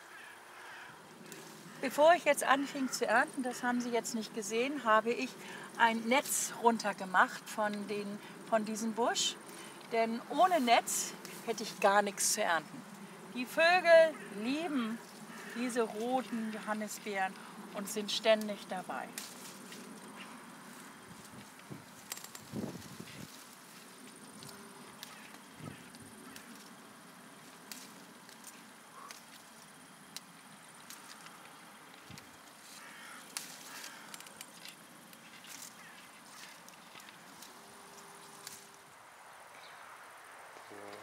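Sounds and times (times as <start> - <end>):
leaves and twigs rustling: 0.0 - 41.0.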